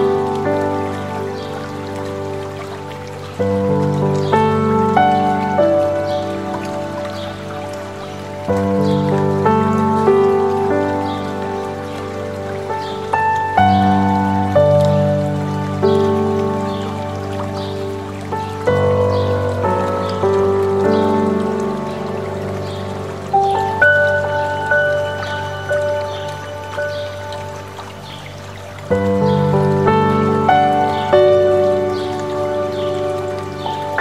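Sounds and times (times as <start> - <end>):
flowing water rushing: 0.0 - 34.0
slow soft solo piano: 0.0 - 34.0.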